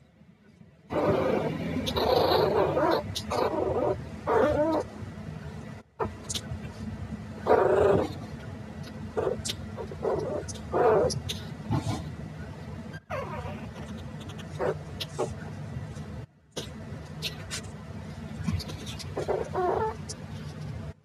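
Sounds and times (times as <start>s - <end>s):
puppies growling and yipping: 0.9s - 5.0s, 7.4s - 8.3s, 9.1s - 12.1s, 12.9s - 15.4s, 18.5s - 20.1s.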